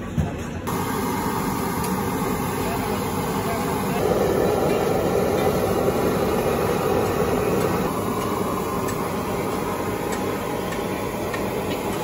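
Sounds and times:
food sizzling in hot oil: 0.7s - 12.0s.

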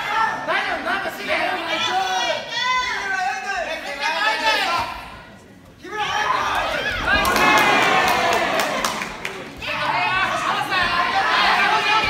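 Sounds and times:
spectators shouting: 5.9s - 12.0s.

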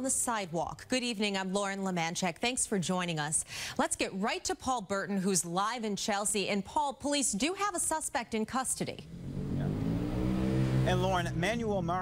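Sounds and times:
vehicle engine accelerating: 9.0s - 12.0s.

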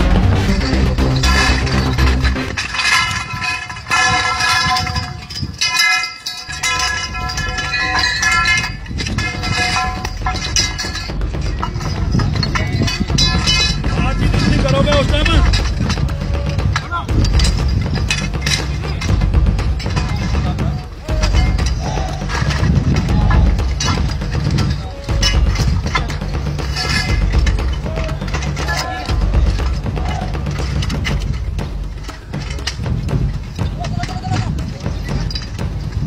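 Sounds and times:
metal poles clattering: 0.0s - 36.0s
steady low rumble: 0.0s - 36.0s
voices: 0.0s - 36.0s.

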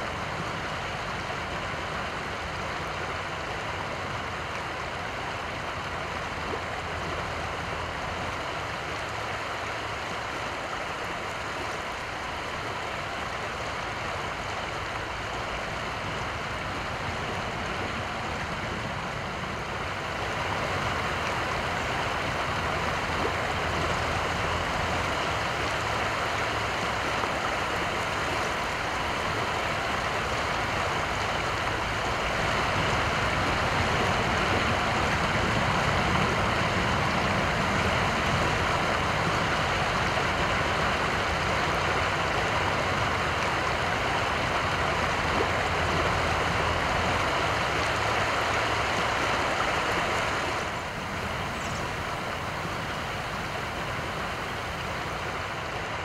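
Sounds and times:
creek water flowing: 0.0s - 56.0s.

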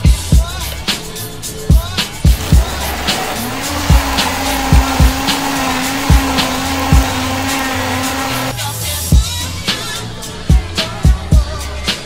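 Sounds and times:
music with a steady beat: 0.0s - 12.0s
blender motor running: 2.4s - 8.5s.

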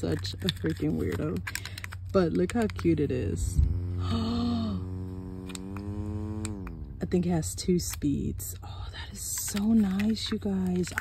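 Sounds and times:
mini fan motor whining: 3.2s - 7.4s.

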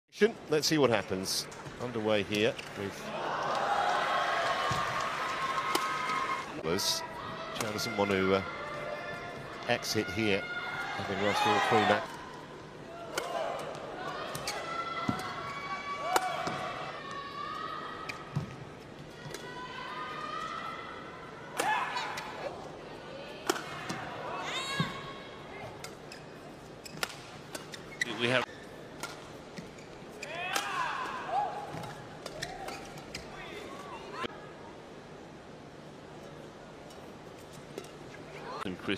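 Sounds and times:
rackets hitting shuttlecock: 13.1s - 15.4s, 16.1s - 16.6s, 23.4s - 24.0s, 26.8s - 27.8s, 28.4s - 29.7s
shoes squeaking on court floor: 14.3s - 15.6s, 24.5s - 30.7s, 31.7s - 34.2s.

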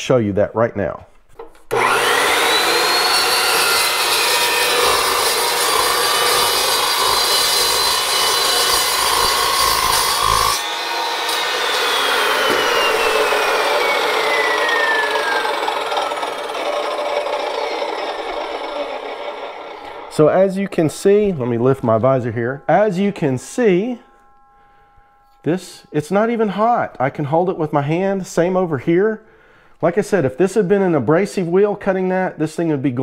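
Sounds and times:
saw blade cutting metal: 1.7s - 27.7s
chop saw whine: 1.7s - 28.5s.

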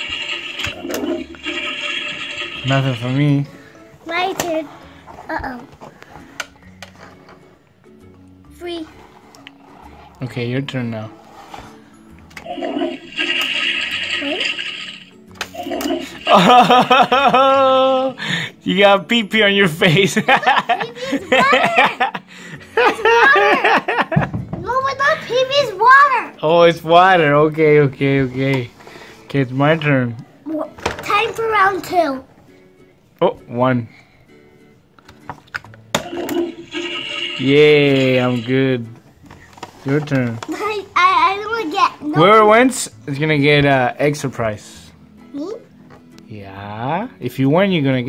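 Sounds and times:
electronic flushing sound effect: 0.0s - 3.1s, 12.4s - 16.8s, 36.0s - 38.5s
quiet background music: 0.0s - 48.0s.

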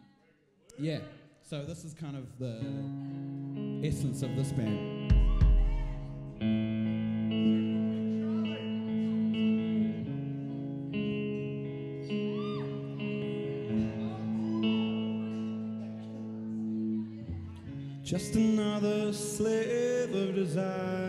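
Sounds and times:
electric guitar ringing chords: 2.6s - 21.0s
live rock band: 3.4s - 21.0s.

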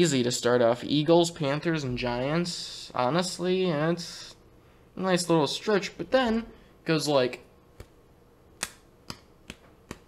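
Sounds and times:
sharp hand clicks: 8.6s - 10.0s.

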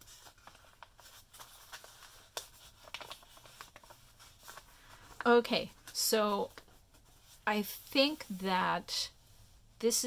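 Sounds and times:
paper rustling and folding: 0.0s - 9.7s.

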